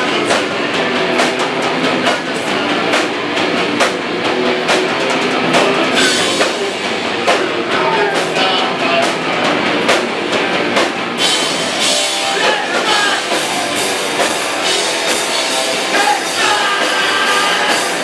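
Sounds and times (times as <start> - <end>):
distorted electric guitars: 0.0 - 18.0.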